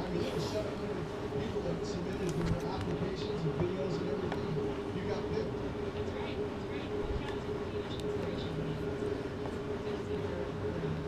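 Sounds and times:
evaporative cooler humming: 0.0s - 11.0s.

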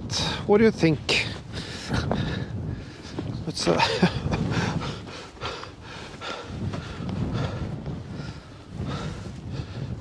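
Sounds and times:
wind rumbling on microphone: 0.0s - 10.0s
breathing close to microphone: 1.5s - 3.2s, 4.5s - 10.0s
man laughing breathily: 3.7s - 6.5s.

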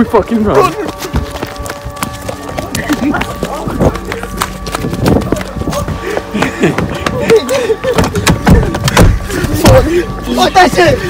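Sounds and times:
loud dull thumps: 8.0s - 9.9s.

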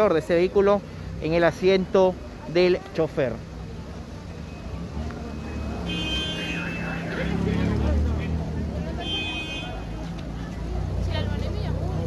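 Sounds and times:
people's voices: 0.0s - 12.0s.

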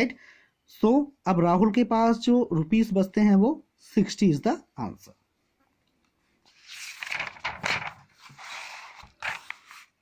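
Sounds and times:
paper page turning: 6.5s - 10.0s.

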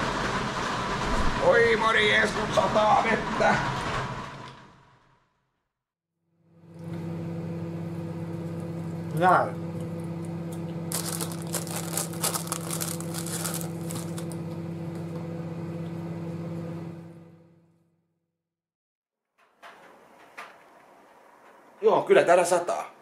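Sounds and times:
plastic packaging crinkling: 10.9s - 14.5s.

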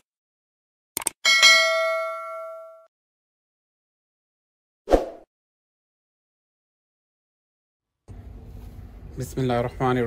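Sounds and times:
bell ding: 1.3s - 2.9s.

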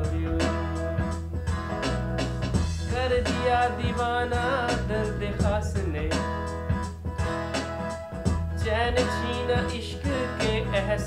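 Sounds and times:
man singing a slow love song: 0.0s - 1.2s, 2.8s - 6.3s, 8.6s - 11.0s
electronic keyboard playing: 0.0s - 11.0s
steady backing beat: 0.0s - 11.0s.

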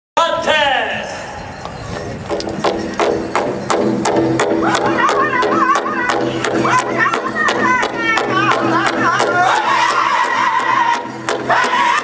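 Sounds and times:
large drum beating: 2.2s - 12.0s
high-pitched voices: 4.6s - 12.0s
people singing: 4.6s - 12.0s.

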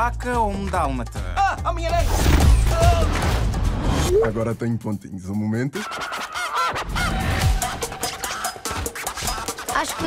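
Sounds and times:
trailer music: 0.0s - 10.0s.

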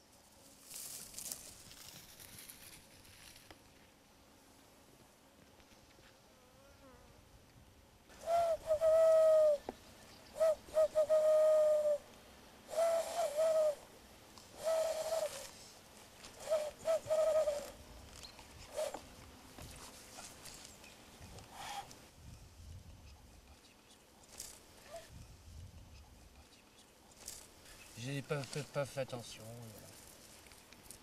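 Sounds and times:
hand whistle hooting: 8.2s - 9.6s, 10.4s - 12.0s, 12.7s - 13.8s, 14.6s - 15.4s, 16.4s - 17.8s.

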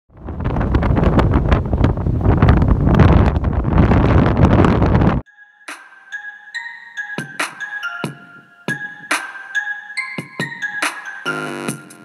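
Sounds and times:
wind buffeting microphone: 0.1s - 5.2s
music notes: 5.3s - 12.0s.

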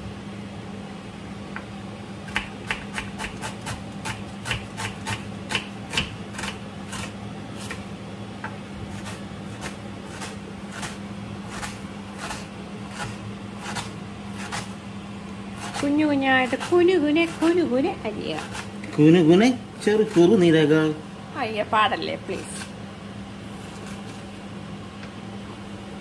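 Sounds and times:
low steady hum: 0.0s - 26.0s
knife slicing onion on board: 2.2s - 14.8s, 15.5s - 17.7s, 18.3s - 20.6s, 23.5s - 24.4s.

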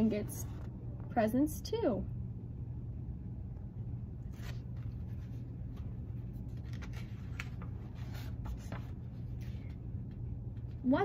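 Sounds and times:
steady low hum: 0.0s - 11.0s
paper pages rustling: 4.2s - 10.8s.

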